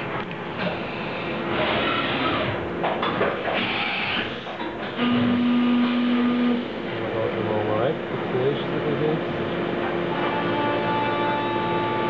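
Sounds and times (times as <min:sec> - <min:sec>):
low machine hum: 0:04.7 - 0:12.0
milling machine humming tone: 0:04.9 - 0:12.0.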